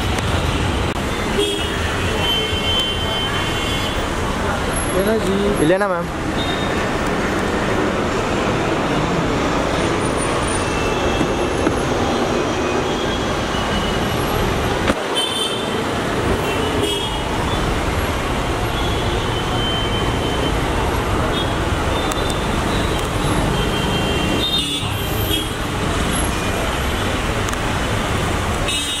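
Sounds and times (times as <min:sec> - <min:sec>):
street traffic noise: 0:00.0 - 0:29.0.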